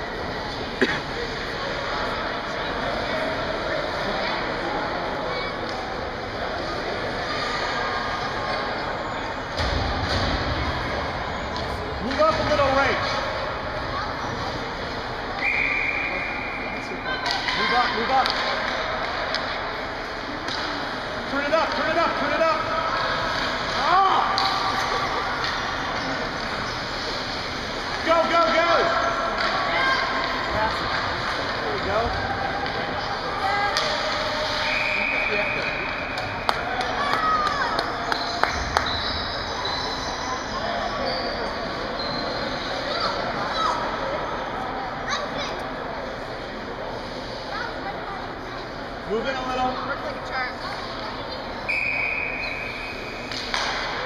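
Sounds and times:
hockey sticks and puck clacking: 11.5 - 15.7, 17.2 - 40.2, 51.7 - 54.0.

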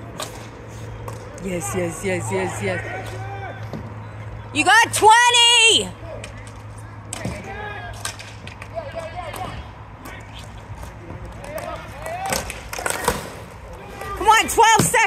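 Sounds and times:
hockey sticks and ball clacking: 0.0 - 1.8, 6.1 - 15.0
distant players shouting: 1.3 - 15.0.

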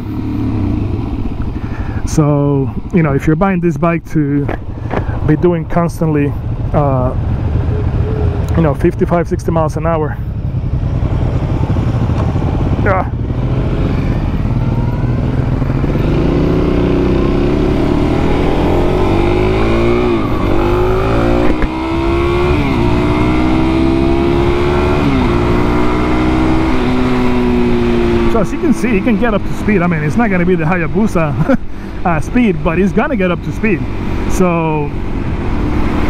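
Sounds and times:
motorcycle engine accelerating: 0.0 - 3.4, 4.4 - 36.0
wind and road noise: 0.0 - 36.0.

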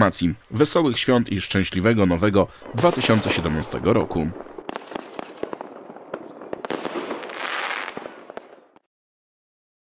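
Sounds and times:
fireworks crackling and popping: 2.5 - 8.9.

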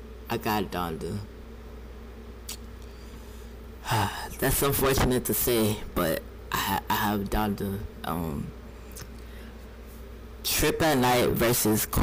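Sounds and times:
low electrical hum: 0.0 - 12.0
man sighing: 3.8 - 4.4.

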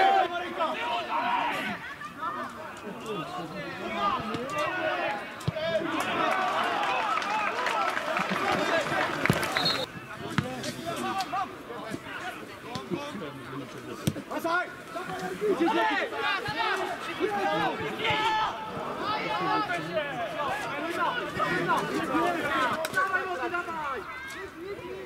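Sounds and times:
voices shouting: 0.0 - 12.7, 14.3 - 25.0.

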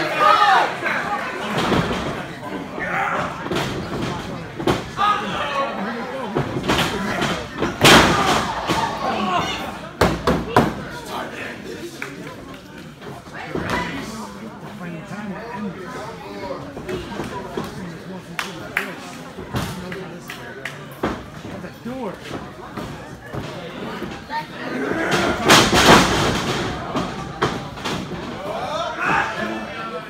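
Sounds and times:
crowd shouting: 0.0 - 1.5.

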